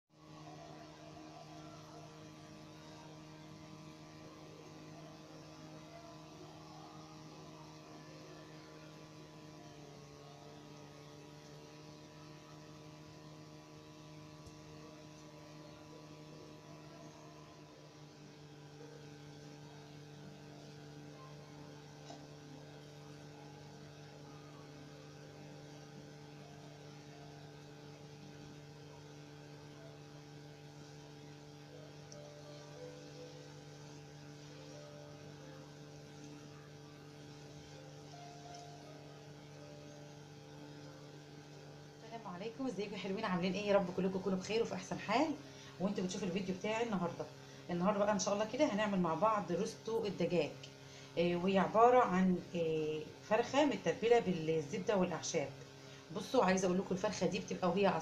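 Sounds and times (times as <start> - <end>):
faint low hum: 0.1 - 58.0.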